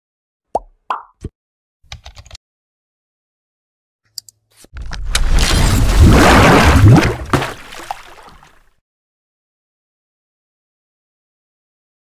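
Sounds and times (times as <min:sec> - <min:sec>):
keyboard typing clicks: 0:01.9 - 0:02.4.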